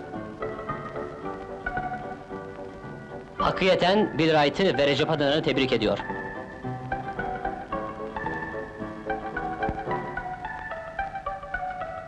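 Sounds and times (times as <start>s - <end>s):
brisk instrumental music: 0.0s - 12.0s.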